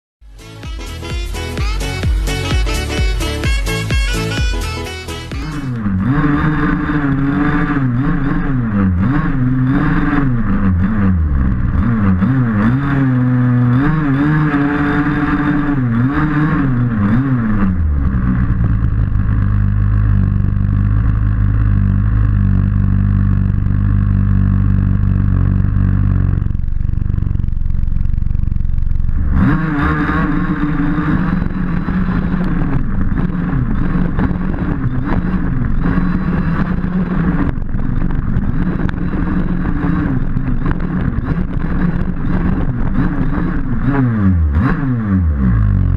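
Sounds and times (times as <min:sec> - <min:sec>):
two-stroke engine revving: 0:00.3 - 0:27.6, 0:29.1 - 0:45.9.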